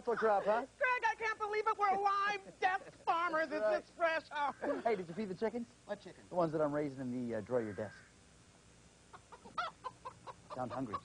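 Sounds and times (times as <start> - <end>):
chickens clucking: 9.0 - 11.0.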